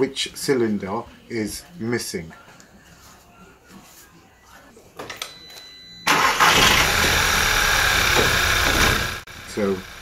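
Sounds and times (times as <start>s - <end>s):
misfiring car engine idling: 6.1s - 10.0s.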